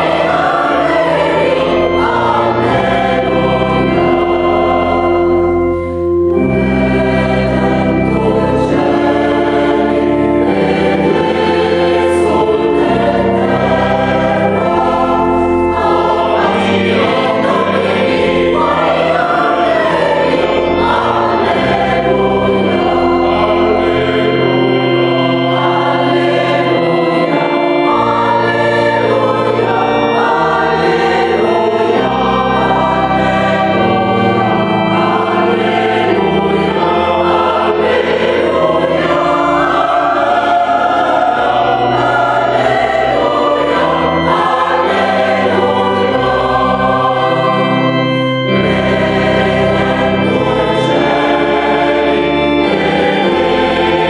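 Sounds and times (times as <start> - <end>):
low organ bass notes: 0.0 - 54.0
mixed choir singing: 0.0 - 54.0.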